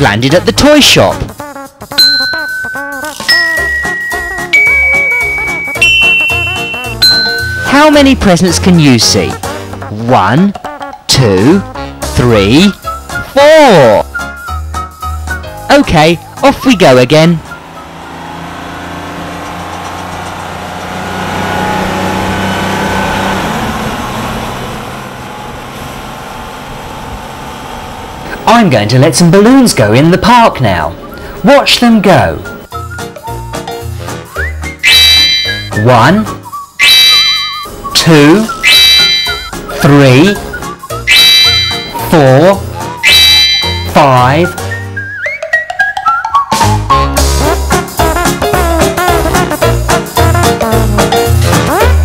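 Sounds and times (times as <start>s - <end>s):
light background music: 0.0s - 18.0s, 29.5s - 52.0s
bell-like ding: 2.0s - 8.0s, 34.8s - 35.8s, 36.8s - 37.7s, 38.7s - 39.6s, 41.1s - 42.0s, 43.0s - 44.1s
car engine driving past: 17.4s - 28.2s.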